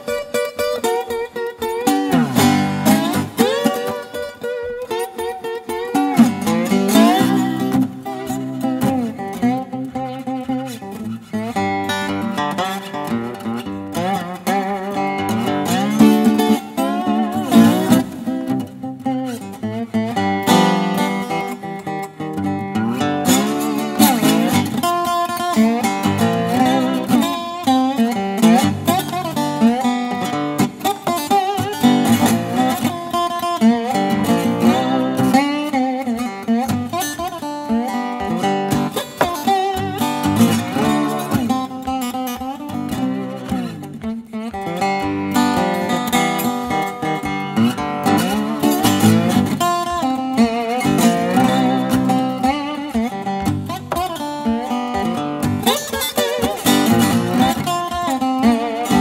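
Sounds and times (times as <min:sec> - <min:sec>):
lap steel guitar blues: 0:00.0 - 0:59.0.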